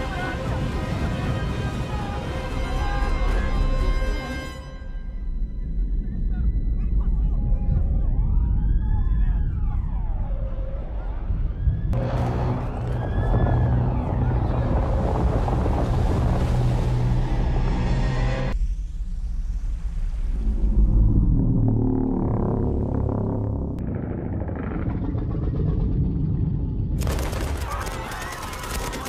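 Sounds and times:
rumbling score music: 0.0s - 29.0s
deep rumble: 5.1s - 28.1s
siren wailing: 7.2s - 14.8s.

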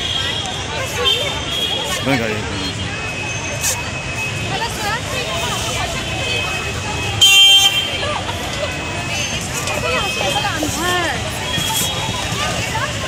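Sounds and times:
people chatting: 0.0s - 13.0s.

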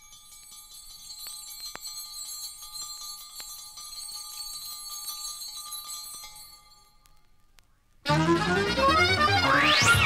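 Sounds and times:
jazz-fusion music with ringing bells: 0.0s - 7.3s.

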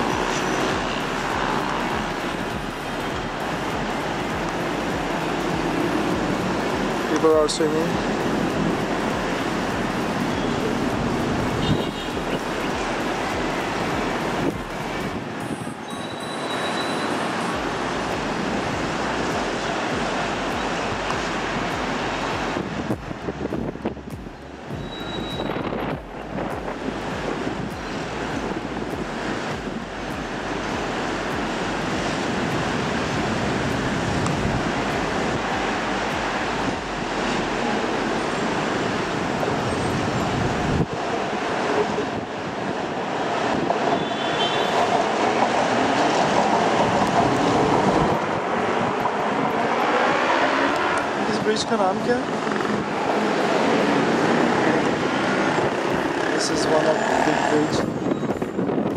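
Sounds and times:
wind buffeting microphone: 0.0s - 15.9s, 17.5s - 58.9s
distant city traffic hum: 0.0s - 58.9s.

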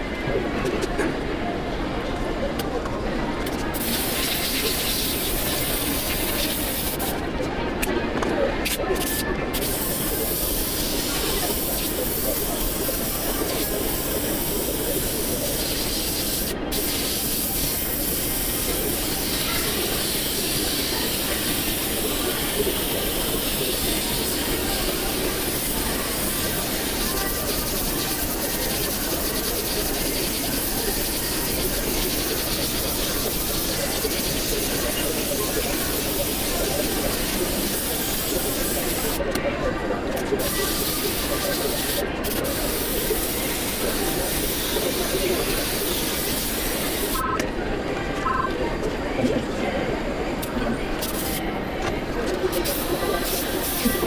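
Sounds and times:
airbrush hiss of compressed air: 3.8s - 7.1s, 9.6s - 39.2s, 40.4s - 47.2s, 51.0s - 51.4s, 52.6s - 54.0s.

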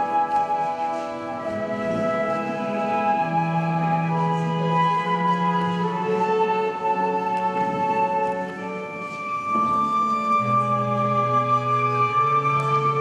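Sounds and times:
flute violin and piano trio: 0.0s - 13.0s.

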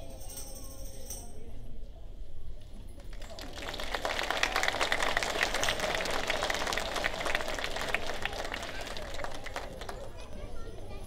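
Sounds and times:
audience applauding: 3.1s - 10.2s.

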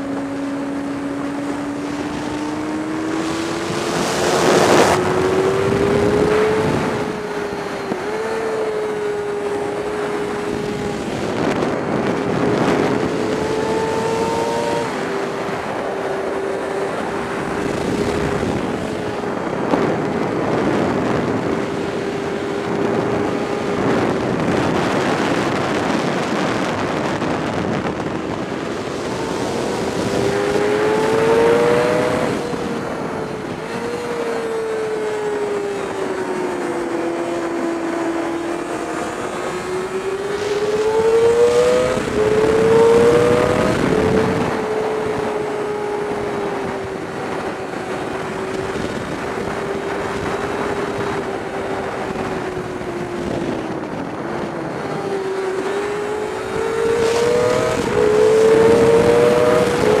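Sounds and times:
motorcycle engine accelerating: 0.0s - 60.0s
wind rushing over microphone: 0.0s - 60.0s.

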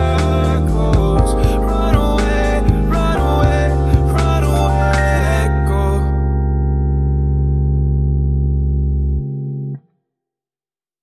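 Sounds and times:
electronic keyboard chord: 0.0s - 9.8s.

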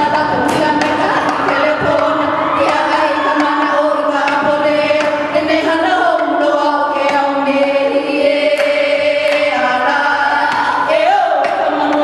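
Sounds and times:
sharp percussive knocks: 0.0s - 6.4s
voices chanting together: 0.0s - 12.0s.

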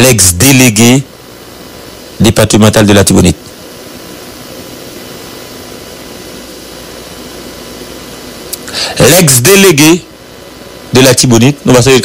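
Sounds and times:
background hiss: 0.0s - 12.0s
faint hum: 0.0s - 12.0s.

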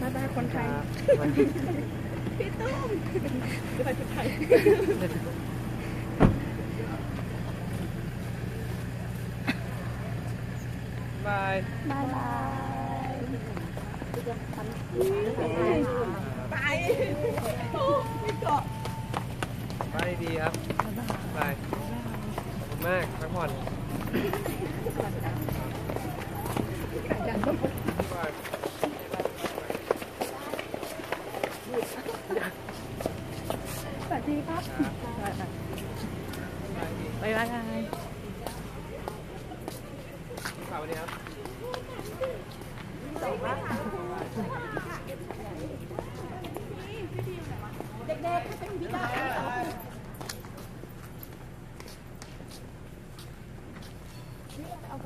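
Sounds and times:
car engine idling: 0.0s - 55.0s
people talking and calling out: 0.0s - 55.0s
car door slamming: 6.1s - 6.7s
quick footsteps and shuffling: 11.8s - 55.0s.

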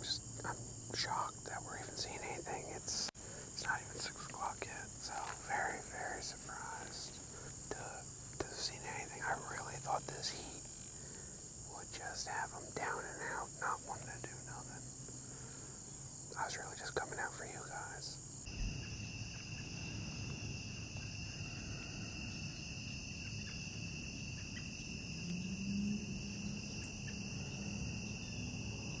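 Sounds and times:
man whispering: 0.0s - 10.7s, 11.6s - 15.0s, 16.3s - 18.2s
faint low hum: 0.0s - 29.0s
insect trill: 0.0s - 29.0s
insects chirring: 0.0s - 29.0s.

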